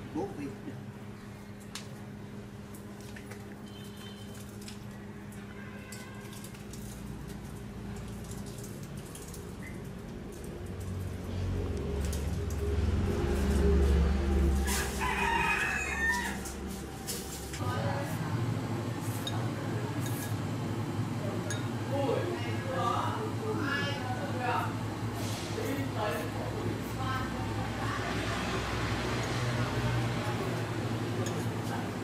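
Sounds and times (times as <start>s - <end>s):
rooster crowing: 14.6s - 16.7s.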